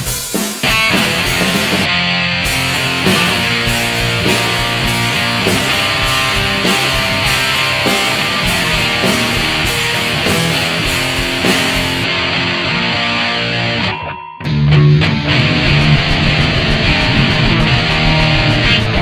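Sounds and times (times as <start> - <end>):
punk rock song: 0.0 - 19.0.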